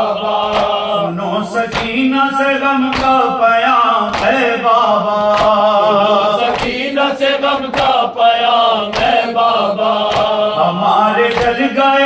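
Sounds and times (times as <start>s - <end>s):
men chanting in unison: 0.0s - 12.0s.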